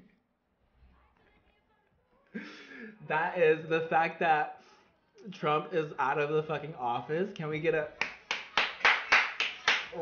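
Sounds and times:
person clapping hands: 8.0s - 10.0s.

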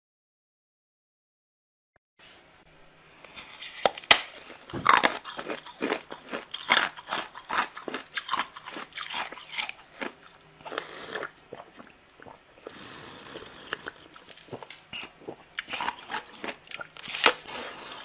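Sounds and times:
ice crunching in mouth: 4.3s - 18.0s.

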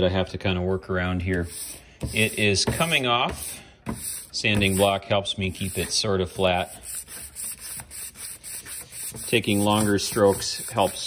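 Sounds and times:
sandpaper rubbing on brass: 1.4s - 11.0s.

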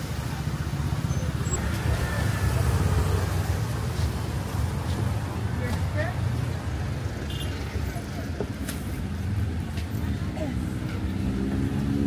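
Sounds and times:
traffic engines rumbling: 0.0s - 12.0s
passers-by talking: 0.2s - 11.7s.

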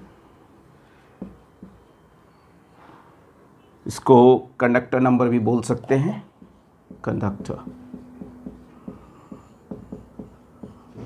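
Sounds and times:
marker writing on whiteboard: 1.1s - 2.0s, 6.3s - 11.0s.

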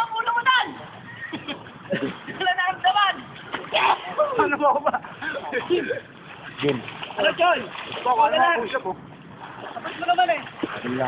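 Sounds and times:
moving water: 0.0s - 11.0s
swimmers calling out: 0.0s - 11.0s.

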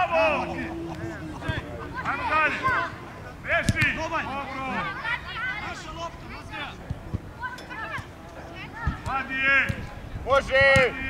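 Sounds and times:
people calling and shouting: 0.0s - 11.0s.

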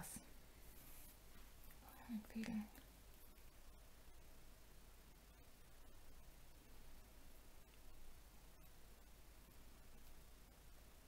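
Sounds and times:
knitted yarn rustling: 0.6s - 1.8s.

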